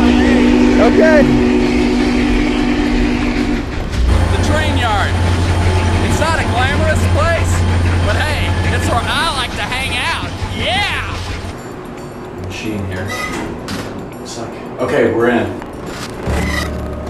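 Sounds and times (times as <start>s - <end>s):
train horn chord: 0.0s - 9.0s
deep engine rumble: 0.0s - 12.4s.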